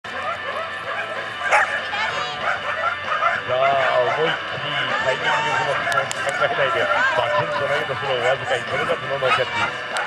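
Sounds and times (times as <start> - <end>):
dogs barking and yipping: 0.1 - 10.0.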